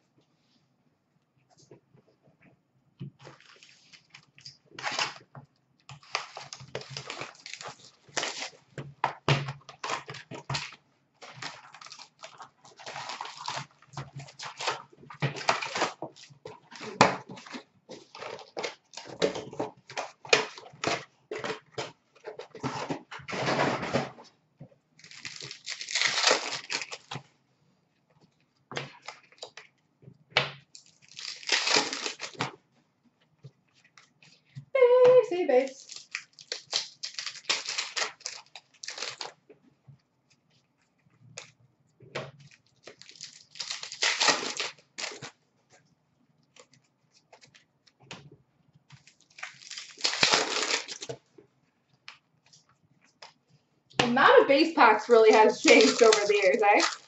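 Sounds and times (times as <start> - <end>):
wrappers crinkling: 3.2 - 5.3, 5.9 - 8.8, 9.6 - 21.6, 25.0 - 27.2, 30.7 - 32.5, 34.0 - 39.4, 42.4 - 45.4, 48.9 - 51.2, 54.0 - 57.0
card pack wrappers tearing: 3.3 - 5.2, 5.9 - 8.6, 9.7 - 19.3, 25.0 - 27.2, 30.8 - 32.5, 35.4 - 39.4, 42.4 - 45.3, 48.9 - 51.2, 54.3 - 57.0
cards shuffling: 54.7 - 57.0.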